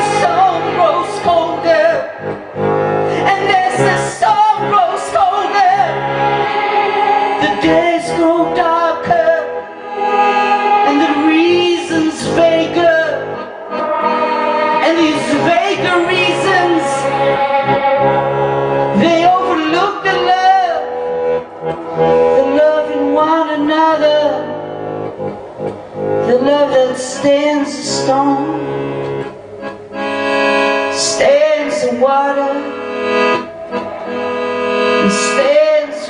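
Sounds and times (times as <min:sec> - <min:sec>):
person singing: 0:00.0 - 0:24.8, 0:26.2 - 0:28.9, 0:30.8 - 0:36.0
accordion chords: 0:00.0 - 0:36.0.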